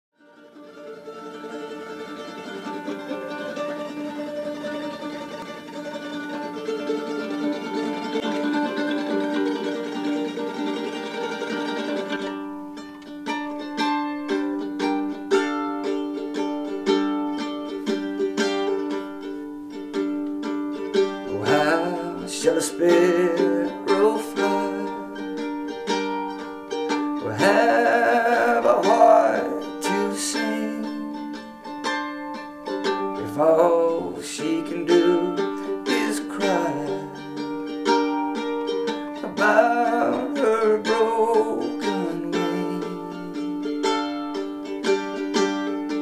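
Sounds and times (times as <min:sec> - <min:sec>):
quickly picked plucked strings: 0:00.2 - 0:46.0.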